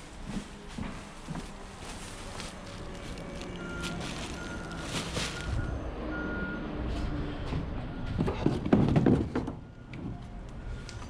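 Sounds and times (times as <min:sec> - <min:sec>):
low mechanical rumble: 0:00.0 - 0:08.2
vehicle warning beeps: 0:03.4 - 0:08.4, 0:09.6 - 0:11.0.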